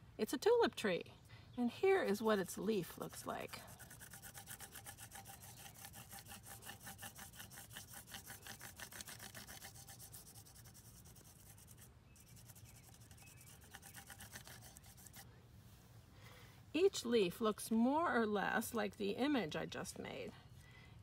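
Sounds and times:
crayon rubbing on paper: 3.2 - 15.2.

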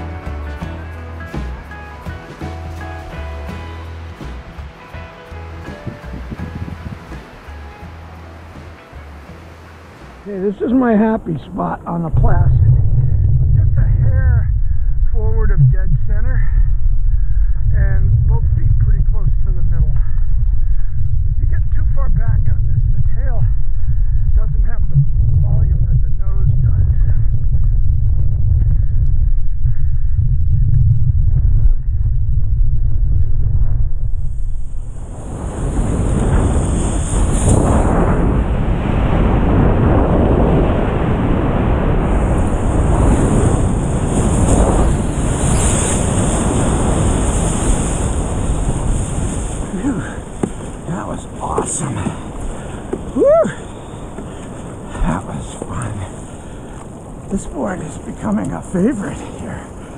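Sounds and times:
rushing hiss of wind and water: 1.3 - 15.5, 34.1 - 59.9
wind buffeting microphone: 5.6 - 7.9, 9.9 - 59.9.

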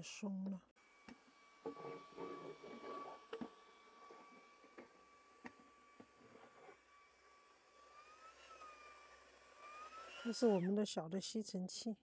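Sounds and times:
electric screwdriver whirring: 0.8 - 10.7.

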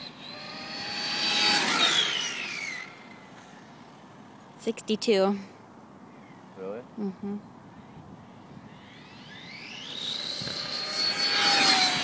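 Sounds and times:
rc car motor whining: 0.0 - 4.6, 8.7 - 12.0.

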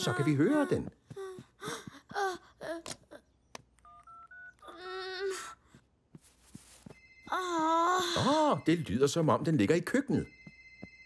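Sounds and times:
phone keypad beeps: 3.8 - 4.6.

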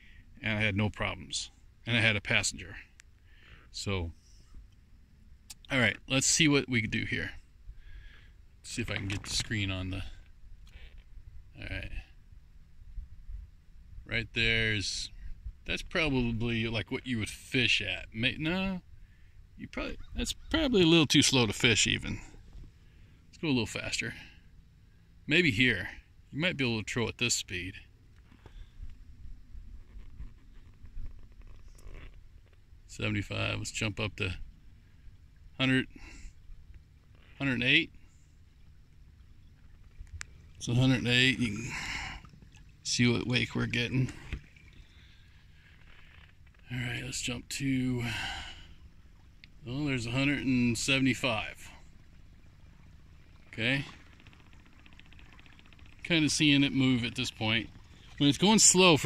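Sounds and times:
light ticks: 2.9 - 3.2
electric trolling motor rumble: 36.2 - 43.6, 44.2 - 46.7, 48.1 - 59.0.

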